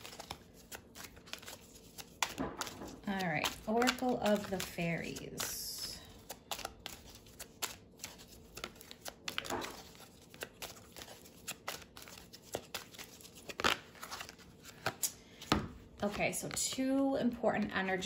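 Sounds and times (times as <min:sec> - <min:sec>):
cards being shuffled by hand: 0:00.0 - 0:17.7.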